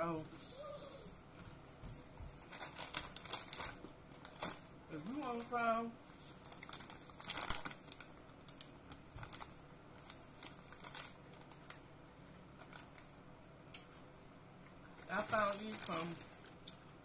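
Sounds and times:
plastic bag crinkling: 0:02.4 - 0:11.8, 0:12.6 - 0:13.2, 0:14.9 - 0:16.9.

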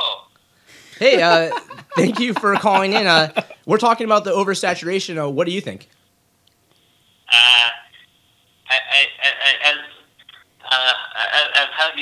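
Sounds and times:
man speaking on telephone: 0:01.0 - 0:03.8, 0:07.3 - 0:08.0, 0:08.7 - 0:12.0.

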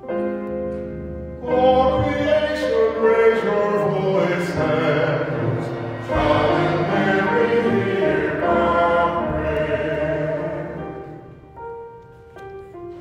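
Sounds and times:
piano accompaniment: 0:00.0 - 0:13.0
congregation singing: 0:01.4 - 0:11.5.

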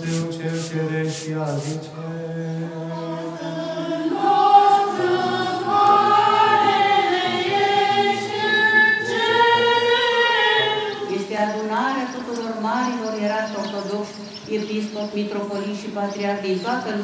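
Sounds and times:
choir singing a hymn: 0:02.4 - 0:11.8.

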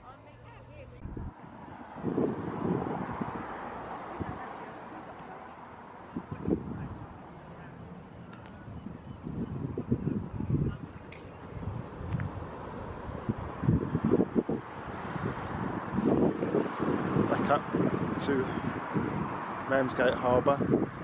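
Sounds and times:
wind buffeting microphone: 0:01.0 - 0:21.0.

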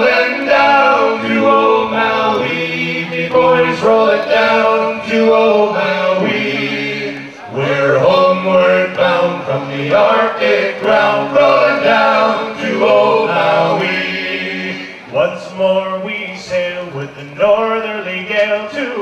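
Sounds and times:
men singing a cappella: 0:00.0 - 0:19.0.

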